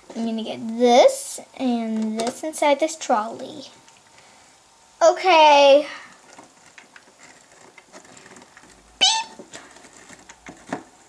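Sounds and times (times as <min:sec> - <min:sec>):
plastic toys clicking and tapping: 0:01.9 - 0:02.4, 0:06.2 - 0:10.9.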